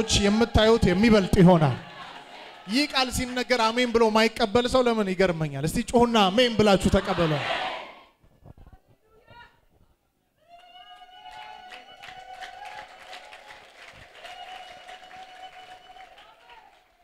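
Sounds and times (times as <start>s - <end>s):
faint hand clapping: 10.6s - 17.0s.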